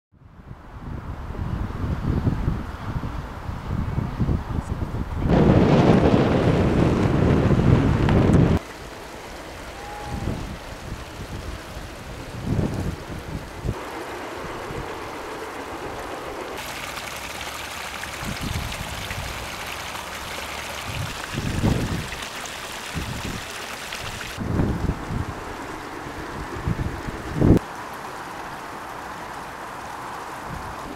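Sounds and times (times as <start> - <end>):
wind buffeting microphone: 0.3 - 8.6, 9.8 - 16.6, 18.0 - 19.6, 20.6 - 27.6.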